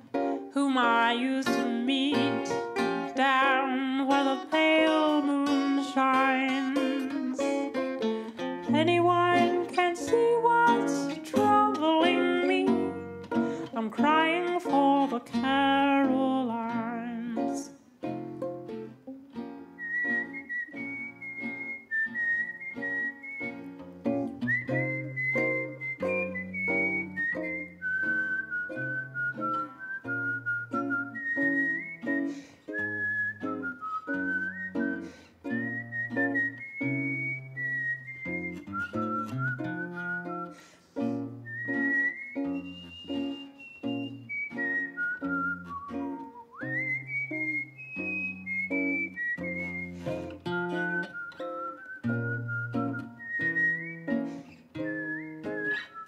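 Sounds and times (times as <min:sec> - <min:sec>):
fingerpicked acoustic guitar: 0:00.0 - 0:56.0
whistled melody: 0:01.1 - 0:13.7, 0:17.6 - 0:56.0.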